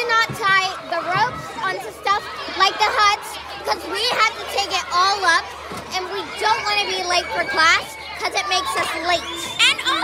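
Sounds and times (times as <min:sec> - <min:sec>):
child speaking: 0:00.0 - 0:10.0.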